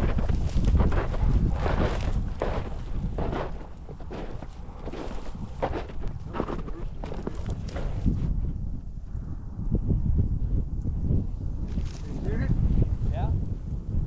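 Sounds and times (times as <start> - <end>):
wind rumbling on microphone: 0.0 - 14.0.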